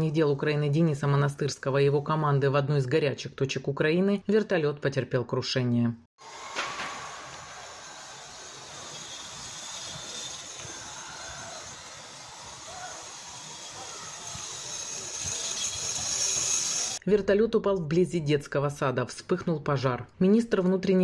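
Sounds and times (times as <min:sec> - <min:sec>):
hissing rush of fire: 0:06.2 - 0:17.0.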